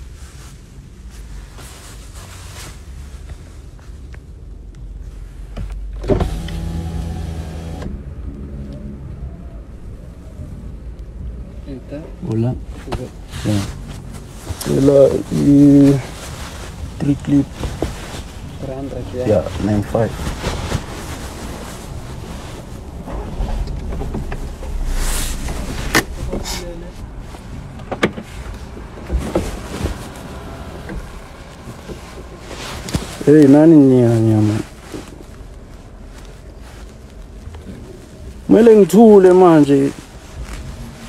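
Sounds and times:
low steady rumble: 0.0 - 41.0
car window motor whirring: 6.1 - 8.0.

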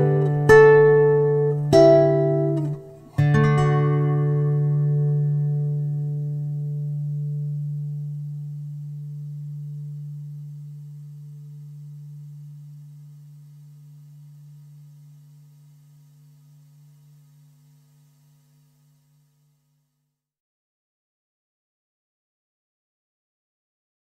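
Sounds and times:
acoustic guitar chord ringing: 0.0 - 19.8.

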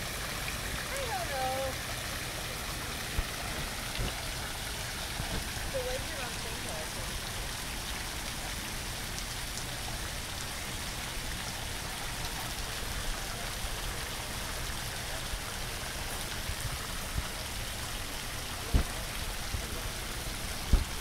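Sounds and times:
water drips: 0.0 - 21.0
water splashing into a pool: 0.0 - 21.0.

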